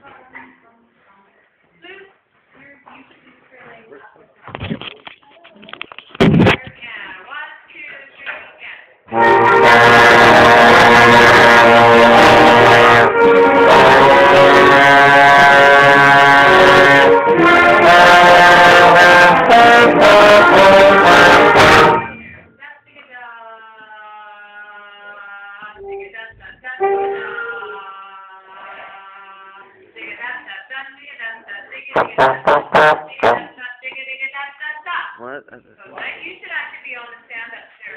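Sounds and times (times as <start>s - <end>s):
trombone playing sustained notes: 9.1s - 22.2s, 26.8s - 27.8s, 32.0s - 33.5s.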